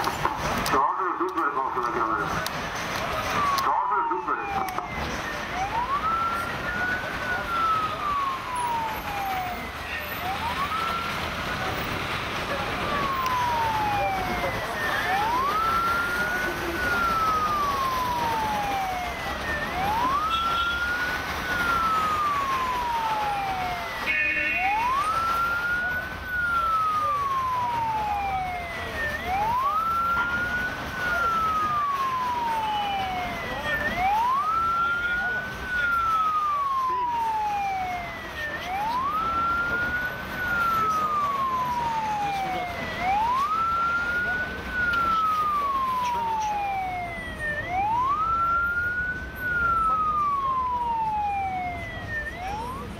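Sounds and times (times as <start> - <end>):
police siren wailing: 0.0 - 52.9.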